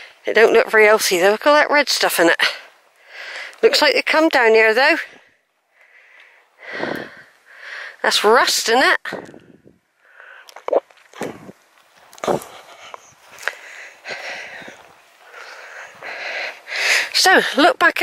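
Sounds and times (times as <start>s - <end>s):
person breathing: 2.6s - 3.6s, 5.1s - 8.0s, 9.2s - 10.6s, 12.3s - 17.2s.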